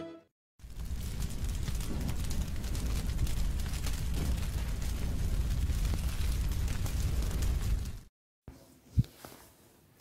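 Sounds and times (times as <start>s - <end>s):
fire crackling: 0.6s - 8.1s
low rumble: 0.6s - 8.1s.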